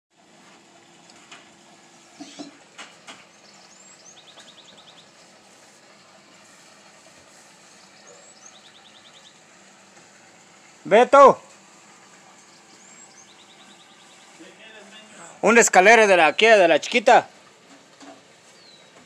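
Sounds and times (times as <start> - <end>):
small bird chirping and trilling: 3.3 - 5.2, 7.7 - 9.4, 12.5 - 14.4.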